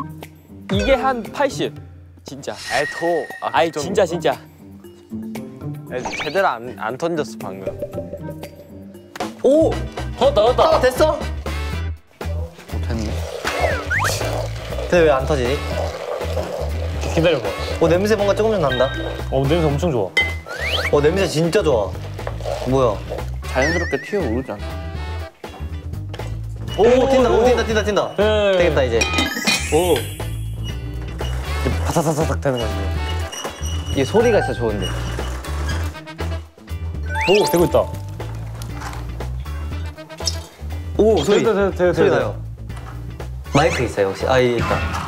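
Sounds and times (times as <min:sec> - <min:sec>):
background music with bass line: 0:07.3 - 0:29.0.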